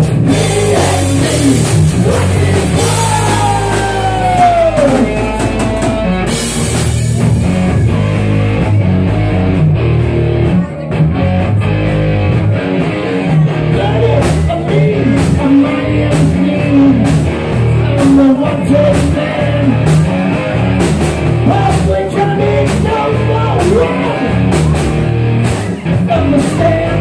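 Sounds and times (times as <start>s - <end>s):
live rock band playing: 0.0s - 27.0s.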